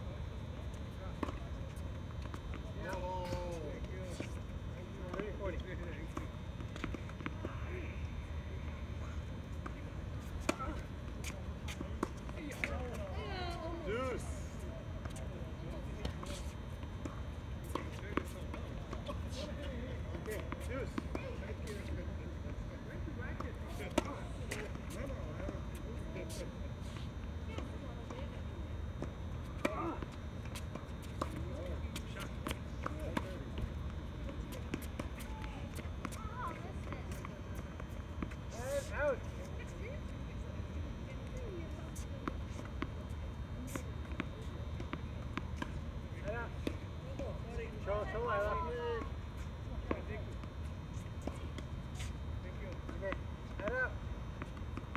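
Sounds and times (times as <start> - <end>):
steady low hum: 0.0 - 54.9.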